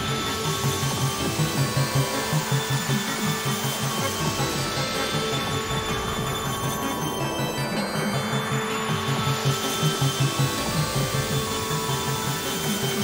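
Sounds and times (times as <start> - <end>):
synth pad tones: 0.0 - 13.0
sequenced synth bass pattern: 1.0 - 8.5.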